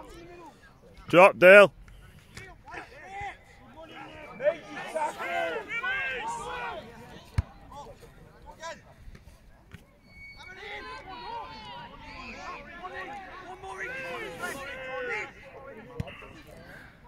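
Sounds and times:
voices shouting: 0:02.4 - 0:07.4, 0:10.4 - 0:17.0.

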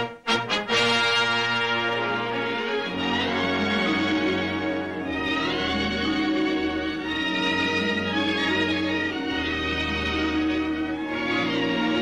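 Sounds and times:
orchestral brass sustained chord: 0:00.0 - 0:12.0.

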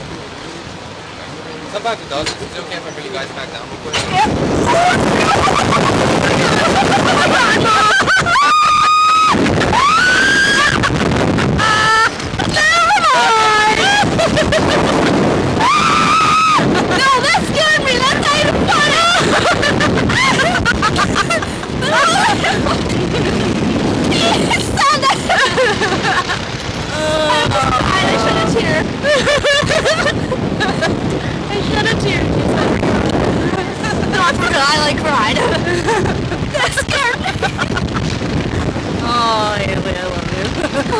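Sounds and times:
wind rushing over microphone: 0:00.0 - 0:40.9
laughter: 0:04.7 - 0:09.4, 0:13.8 - 0:15.1, 0:19.0 - 0:23.3, 0:24.2 - 0:26.5, 0:29.0 - 0:31.0, 0:33.6 - 0:38.1, 0:40.4 - 0:40.9
women screaming: 0:04.7 - 0:14.6, 0:15.5 - 0:22.8, 0:24.1 - 0:26.2, 0:26.9 - 0:30.7.

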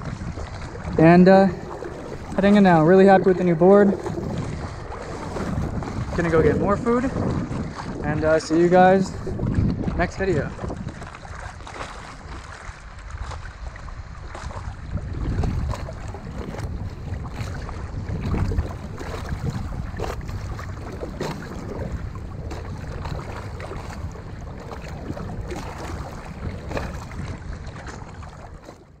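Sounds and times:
low wind rumble on microphone: 0:00.0 - 0:29.0
sea water sloshing and splashing: 0:00.0 - 0:29.0.

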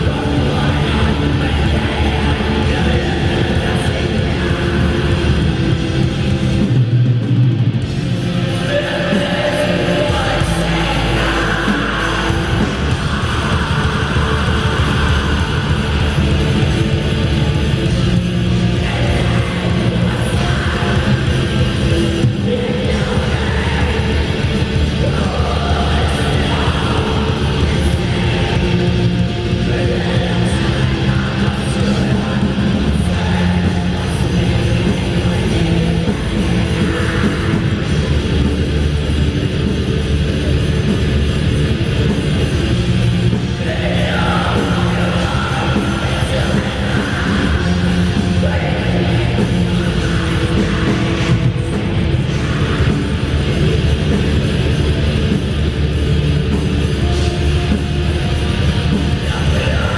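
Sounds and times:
bass guitar: 0:00.0 - 0:59.9
distorted electric guitars: 0:00.0 - 0:59.9
fast dense drumming: 0:00.0 - 0:59.9
live metal band playing: 0:00.0 - 0:59.9.

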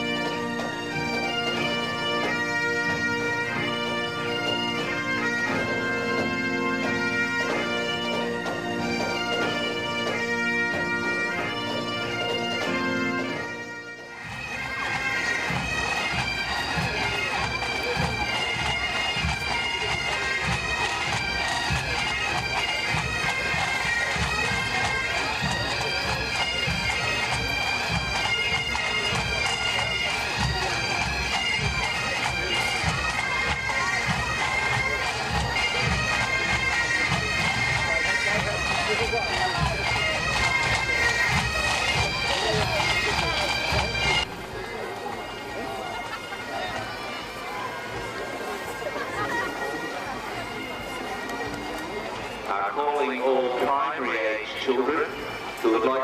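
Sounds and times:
bagpipes playing melody: 0:00.0 - 0:56.0
marching drum beat: 0:14.2 - 0:44.5.

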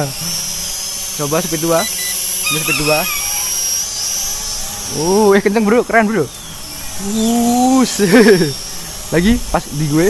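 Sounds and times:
drone propellers whining: 0:00.0 - 0:10.0.

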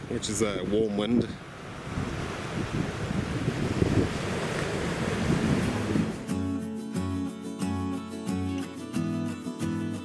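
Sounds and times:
wind buffeting microphone: 0:00.0 - 0:06.3
surf washing on shore: 0:00.0 - 0:06.4
acoustic guitar music: 0:05.2 - 0:10.0.

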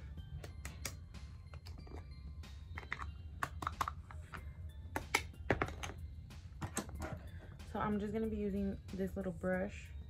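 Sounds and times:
makeup containers clicking and tapping: 0:00.4 - 0:06.0.

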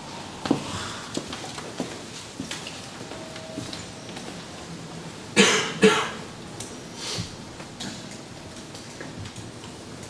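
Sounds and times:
person coughing: 0:05.4 - 0:06.2.

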